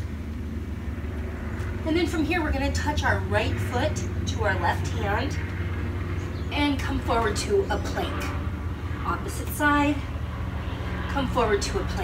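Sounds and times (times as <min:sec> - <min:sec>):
low machinery rumble: 0:00.0 - 0:12.0.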